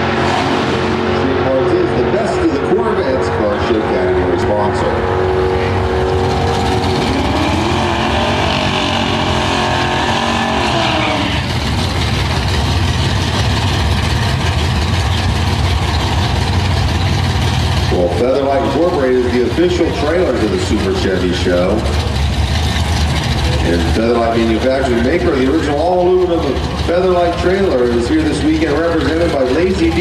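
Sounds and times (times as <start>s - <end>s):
engine revving high: 0.0s - 12.3s
low engine rumble: 0.0s - 30.0s.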